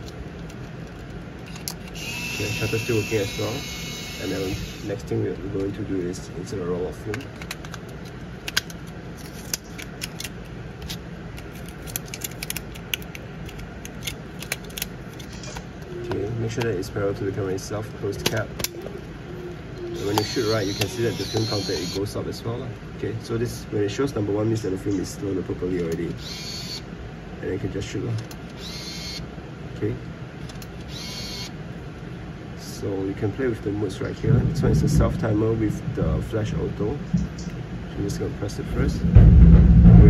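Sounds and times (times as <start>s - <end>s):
camera motor whirring: 1.4s - 5.0s, 19.9s - 22.1s, 26.2s - 26.8s, 28.5s - 29.2s, 30.8s - 31.6s
small clicks of film handling: 7.1s - 15.6s, 30.4s - 30.9s.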